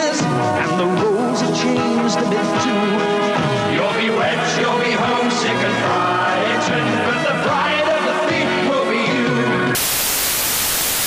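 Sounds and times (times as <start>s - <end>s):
music: 0.0s - 9.8s
television static hiss: 9.8s - 11.0s.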